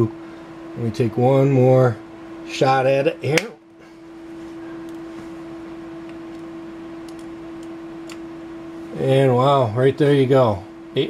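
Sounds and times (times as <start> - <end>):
electrical equipment hum: 0.0 - 11.0.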